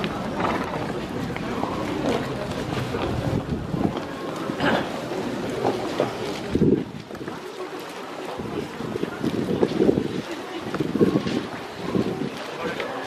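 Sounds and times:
faint voices: 0.0s - 13.0s
wind buffeting microphone: 0.2s - 4.4s, 5.6s - 7.5s, 8.2s - 12.8s.

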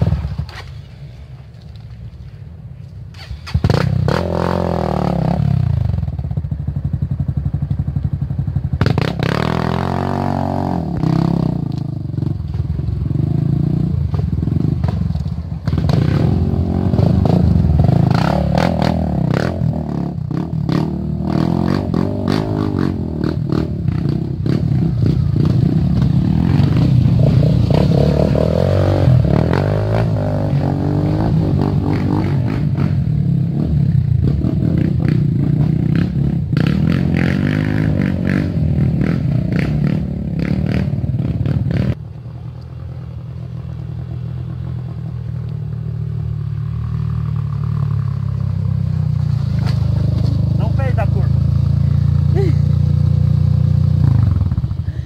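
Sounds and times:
dirt bike engine revving: 3.2s - 6.0s, 8.8s - 12.4s, 15.7s - 42.0s.

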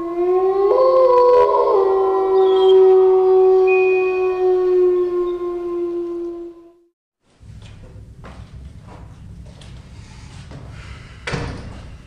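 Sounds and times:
eerie howling tones: 0.0s - 6.9s.

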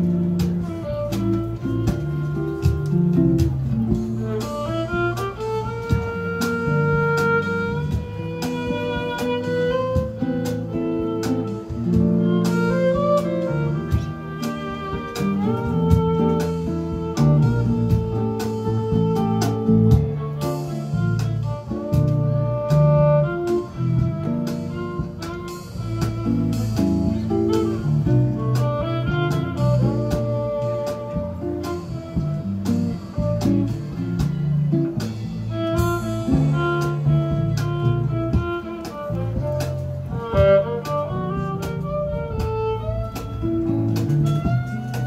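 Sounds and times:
bowed violin melody: 0.0s - 45.0s
guitars playing chords: 0.0s - 45.0s.

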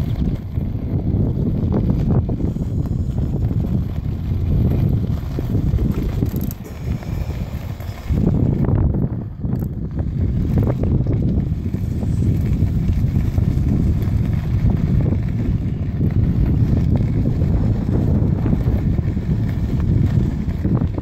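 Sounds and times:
tyre rolling over gravel: 0.0s - 21.0s
wind buffeting microphone: 0.0s - 21.0s.

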